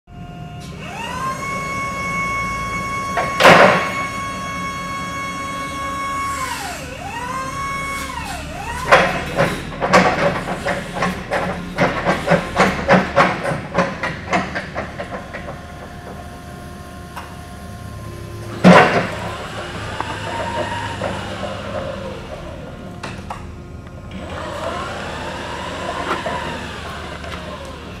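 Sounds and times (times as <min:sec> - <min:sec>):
hydraulic pump motor whine: 0:00.1 - 0:28.0.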